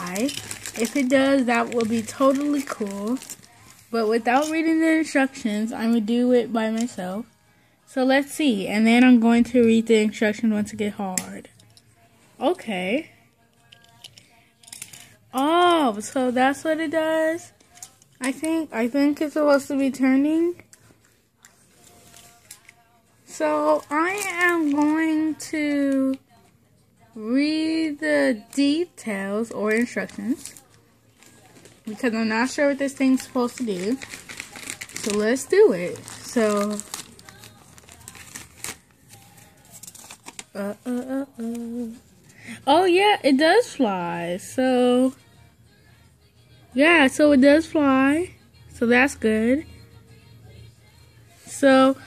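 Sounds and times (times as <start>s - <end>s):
paper crinkling: 0.0s - 4.8s, 23.6s - 25.4s, 28.3s - 42.0s
faint background music: 0.0s - 52.0s.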